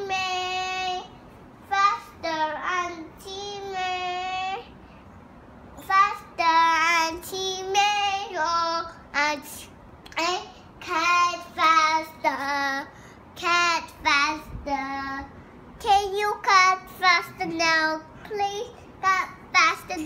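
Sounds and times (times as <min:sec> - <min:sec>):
toddler singing: 0:00.0 - 0:01.1, 0:01.7 - 0:04.7, 0:05.8 - 0:20.0.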